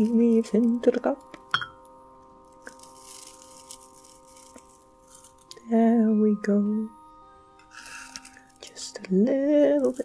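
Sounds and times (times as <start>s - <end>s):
tea leaves rustling into cup: 2.6s - 5.6s, 7.7s - 8.9s, 9.6s - 10.0s.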